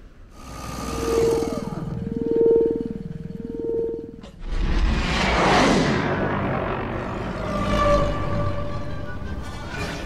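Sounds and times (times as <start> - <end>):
synthesized electronic drone: 0.3 - 4.3, 6.0 - 10.0.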